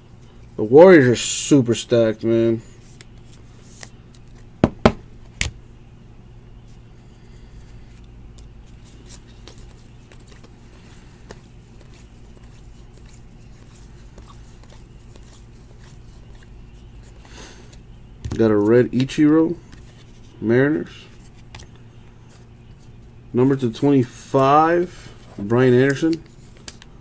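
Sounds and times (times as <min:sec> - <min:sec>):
steady low hum: 0:00.0 - 0:27.0
cards being flipped through: 0:02.8 - 0:04.5, 0:07.6 - 0:20.4, 0:25.2 - 0:27.0.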